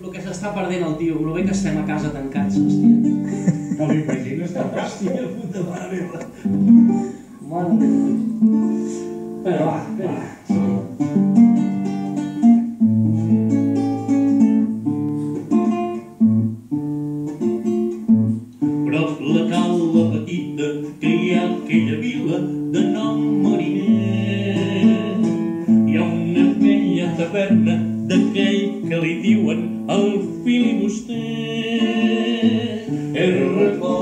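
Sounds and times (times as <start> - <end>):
acoustic guitar chords: 0.0 - 34.0
man singing: 18.8 - 34.0.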